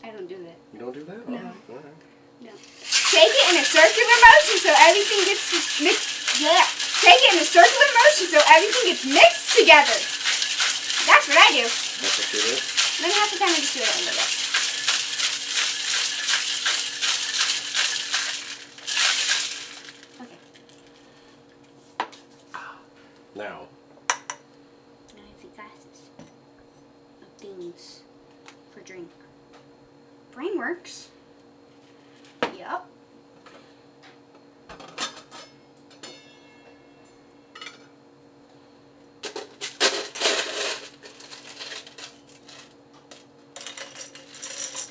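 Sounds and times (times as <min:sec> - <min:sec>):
ice rattling in cocktail shaker: 0:02.6 - 0:21.0, 0:39.6 - 0:44.9
ringing glass clink: 0:36.0 - 0:37.8.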